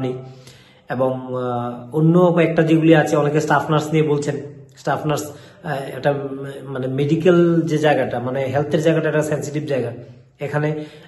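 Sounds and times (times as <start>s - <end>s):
man speaking: 0.0s - 0.3s, 0.9s - 11.0s.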